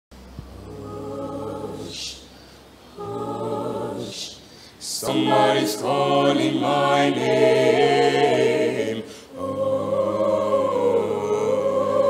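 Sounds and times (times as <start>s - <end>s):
choir singing: 0.6s - 2.3s, 2.9s - 12.0s.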